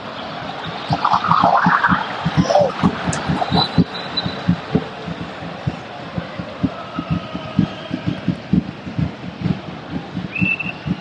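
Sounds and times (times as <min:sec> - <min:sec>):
stadium crowd noise: 0:00.0 - 0:11.0
drum thumping: 0:00.7 - 0:11.0.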